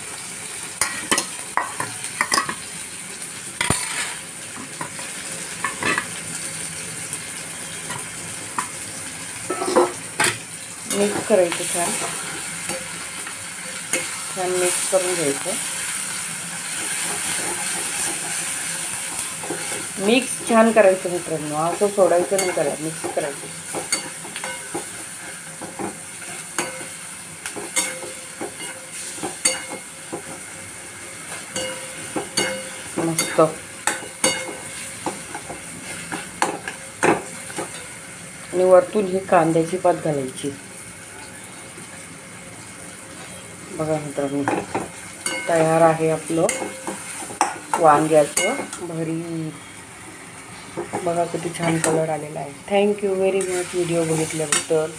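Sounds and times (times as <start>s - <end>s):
eggplant sizzling in a pan: 0.0s - 54.9s
spatula stirring in a pan: 3.6s - 6.2s, 9.4s - 38.0s, 44.5s - 48.9s, 53.3s - 54.8s.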